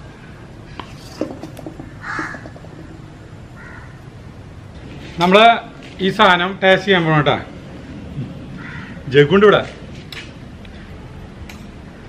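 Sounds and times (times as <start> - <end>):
wooden spatula scraping steel pan: 0.8 - 2.9
crow cawing: 1.9 - 2.8, 3.6 - 4.0, 8.6 - 9.0.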